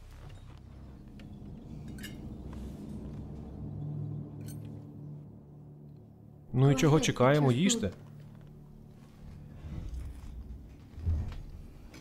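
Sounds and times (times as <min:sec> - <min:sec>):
low steady drone: 0:00.0 - 0:12.0.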